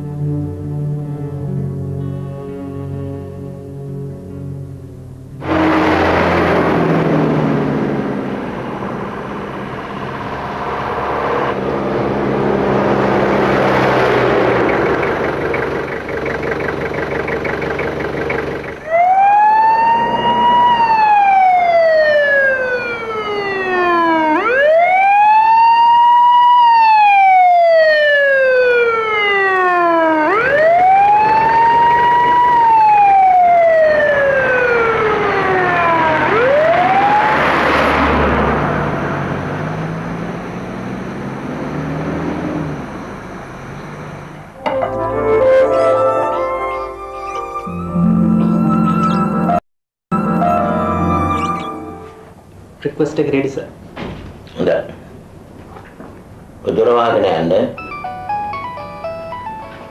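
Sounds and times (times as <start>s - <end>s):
background music: 0.0s - 6.0s, 44.6s - 52.4s, 57.8s - 59.9s
siren wailing: 5.4s - 10.4s, 18.6s - 52.4s.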